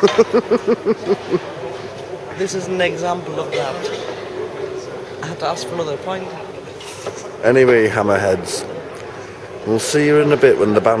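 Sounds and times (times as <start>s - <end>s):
woman laughing: 0.0s - 1.4s
low background murmur: 0.0s - 11.0s.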